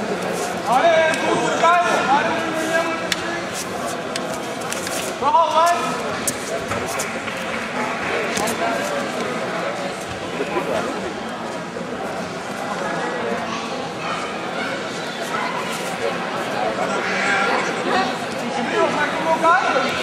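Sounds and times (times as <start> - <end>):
crowd talking and shouting: 0.0 - 20.0.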